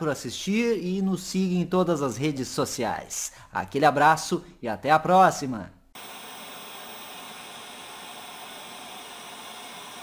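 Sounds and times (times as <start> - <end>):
tv static hiss: 6.0 - 10.0.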